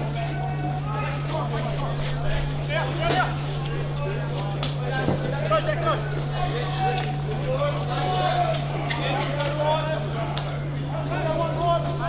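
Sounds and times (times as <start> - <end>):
players calling out: 0.0 - 12.0
steady low hum: 0.0 - 12.0.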